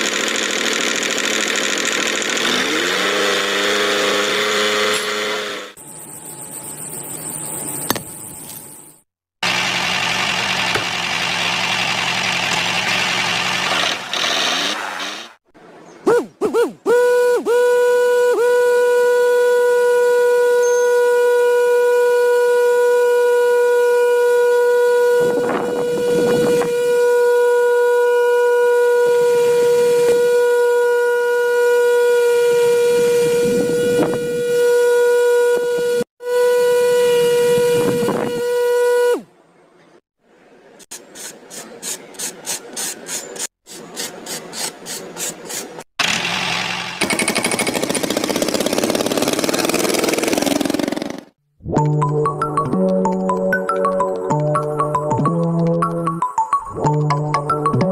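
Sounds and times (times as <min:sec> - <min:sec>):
small electric fan motor whining: 0:16.5 - 0:39.3.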